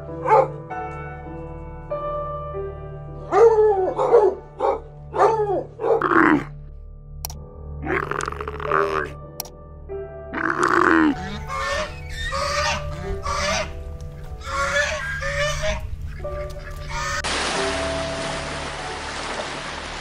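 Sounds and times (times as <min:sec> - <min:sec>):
camel groaning: 0:06.0 - 0:06.6, 0:07.8 - 0:09.2, 0:10.3 - 0:13.7
swans honking: 0:10.4 - 0:17.4
rushing water and wind: 0:12.4 - 0:20.0.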